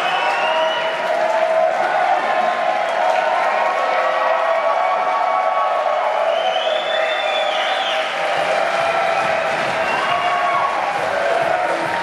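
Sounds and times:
crowd cheering and applauding: 0:00.0 - 0:12.0
crowd shouts: 0:00.0 - 0:12.0.

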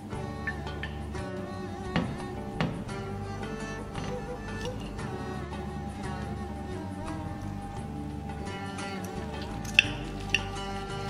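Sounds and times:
instrumental music: 0:00.0 - 0:11.0.

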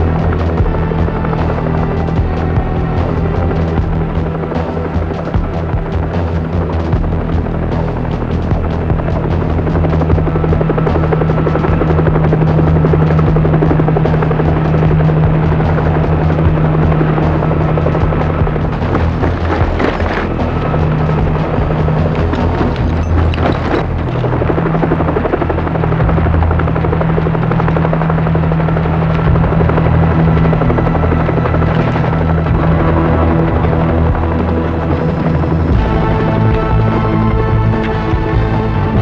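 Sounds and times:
film music: 0:00.0 - 0:39.0
helicopter rotor beating: 0:00.0 - 0:39.0
low engine drone: 0:00.0 - 0:39.0.

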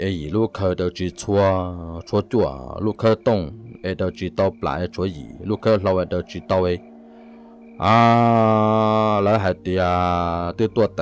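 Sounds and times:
man holding a low vowel: 0:04.8 - 0:10.3.

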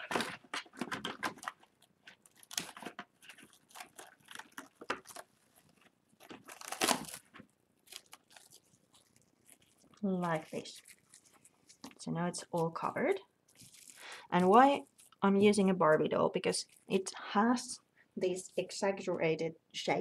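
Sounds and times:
cling film crinkling and tearing: 0:00.0 - 0:17.0.

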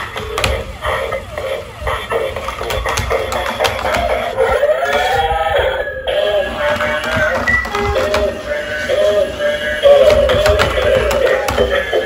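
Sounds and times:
electronic dance music from toy speaker: 0:00.0 - 0:12.0.

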